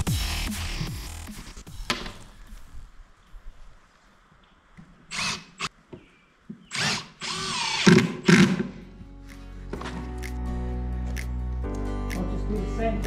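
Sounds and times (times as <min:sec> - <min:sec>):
cordless drill driving screws: 0:05.1 - 0:05.7, 0:06.7 - 0:08.7.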